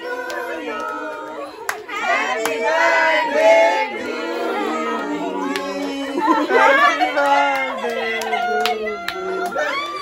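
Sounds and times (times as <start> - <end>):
voices singing: 0.0 - 10.0.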